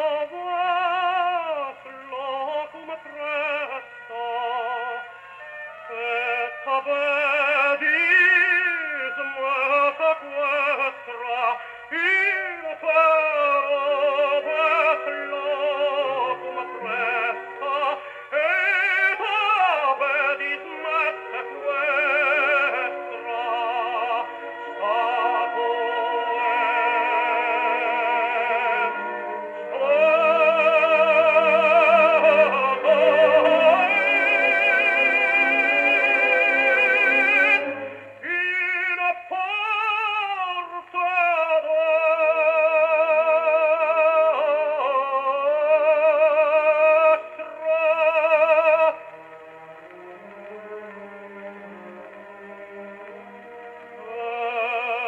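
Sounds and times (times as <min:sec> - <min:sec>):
gramophone record singing: 0:00.0 - 0:55.0.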